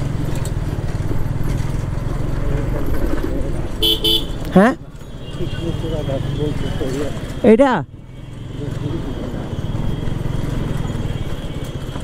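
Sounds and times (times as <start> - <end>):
motorcycle engine running: 0.0 - 4.7, 8.0 - 12.0
street noise: 0.0 - 12.0.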